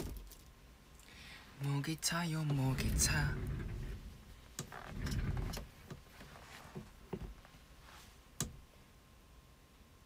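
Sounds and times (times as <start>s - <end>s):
microphone handling rumble: 2.4s - 5.8s.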